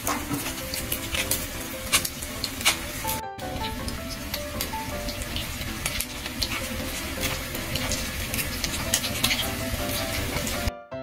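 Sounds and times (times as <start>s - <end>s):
food frying in hot oil: 0.0s - 10.7s.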